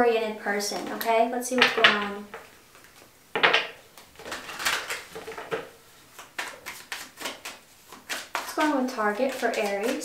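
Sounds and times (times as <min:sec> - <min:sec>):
cards being shuffled: 0:00.8 - 0:10.0.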